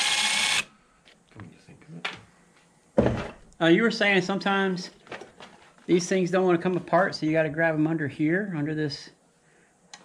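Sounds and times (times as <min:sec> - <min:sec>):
cordless drill running: 0:00.0 - 0:00.7.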